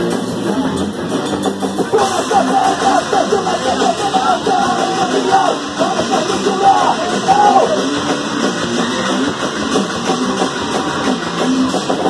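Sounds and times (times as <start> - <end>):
bass guitar: 0.0 - 12.0
drum kit: 0.0 - 12.0
electric guitar: 0.0 - 12.0.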